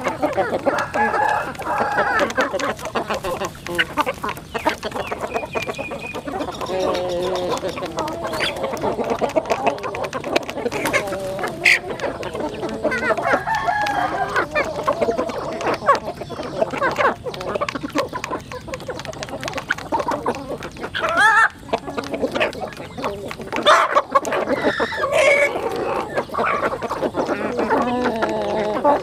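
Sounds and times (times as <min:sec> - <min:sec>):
beaks pecking grain: 0:00.0 - 0:29.0
chickens clucking and calling: 0:00.0 - 0:29.0.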